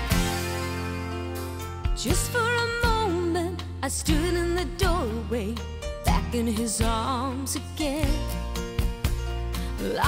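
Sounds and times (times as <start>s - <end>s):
country band playing: 0.0s - 10.0s
person singing: 9.6s - 10.0s.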